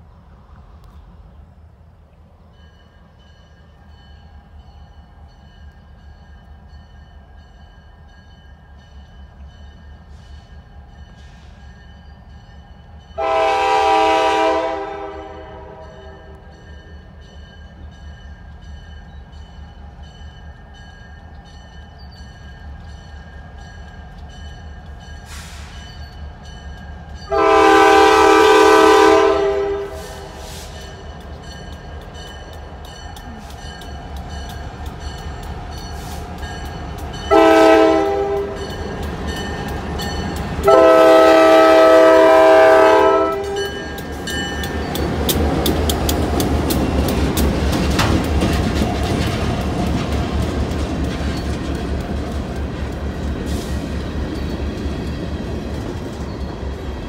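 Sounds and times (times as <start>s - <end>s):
diesel locomotive engines under load: 0.0s - 57.0s
locomotive air horn: 13.2s - 16.4s, 27.3s - 30.8s, 37.3s - 38.7s, 40.6s - 44.0s
train wheels clicking over rail joints: 29.9s - 37.4s, 38.0s - 40.9s, 43.2s - 57.0s.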